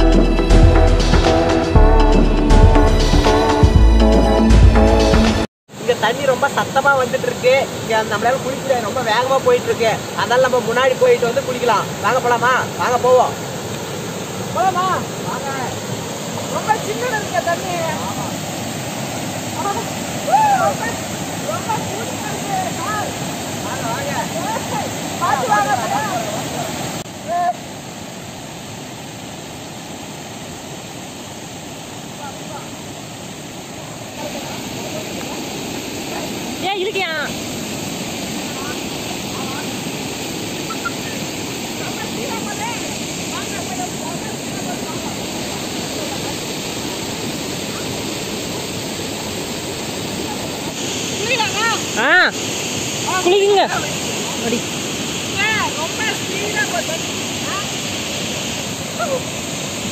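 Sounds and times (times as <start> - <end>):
river water rushing over rocks: 5.7 - 59.9
voices calling out: 40.5 - 45.3.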